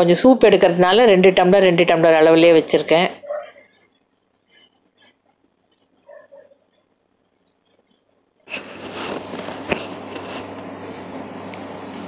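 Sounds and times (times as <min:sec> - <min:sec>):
steady hiss with low hum: 0:00.0 - 0:12.0.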